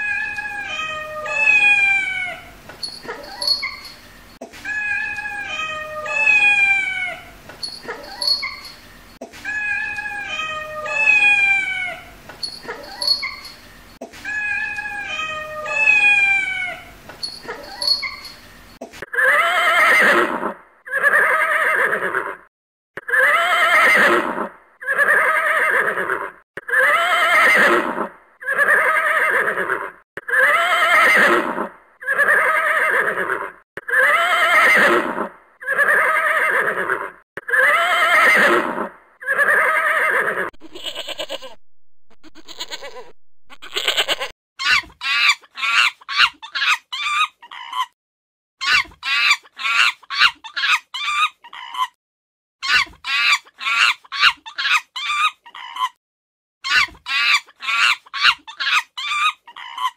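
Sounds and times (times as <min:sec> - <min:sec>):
cat meowing: 0:00.0 - 0:02.5, 0:04.7 - 0:07.3, 0:09.5 - 0:12.1, 0:14.3 - 0:16.9
farm animal crying: 0:00.0 - 0:04.0, 0:04.7 - 0:41.6, 0:42.2 - 0:48.0, 0:48.6 - 0:52.0, 0:52.6 - 0:56.0, 0:56.7 - 0:59.9.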